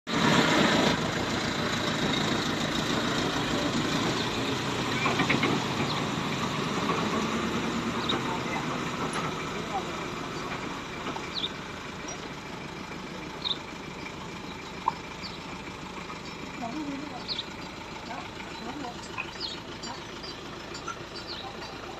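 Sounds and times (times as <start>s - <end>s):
truck engine idling: 0.1s - 21.9s
people talking: 3.2s - 4.2s, 8.0s - 10.8s, 16.5s - 17.4s, 18.0s - 21.9s.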